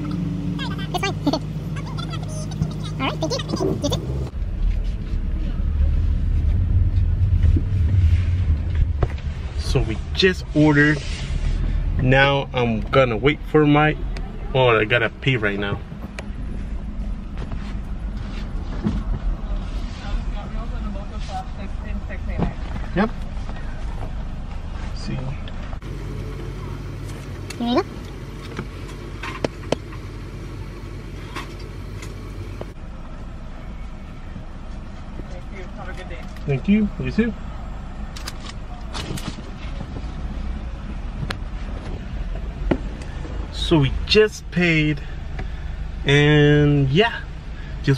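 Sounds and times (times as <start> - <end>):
car engine idling: 0.0 - 47.9.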